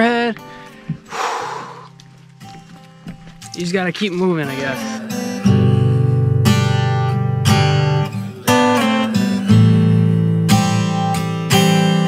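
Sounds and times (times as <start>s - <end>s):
sharp breathy exhale: 1.1s - 2.0s.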